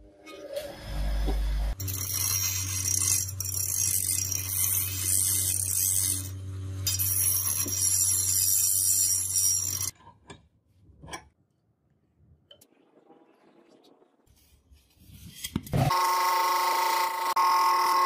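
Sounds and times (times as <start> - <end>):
grinder motor hum: 15.8 - 18.0.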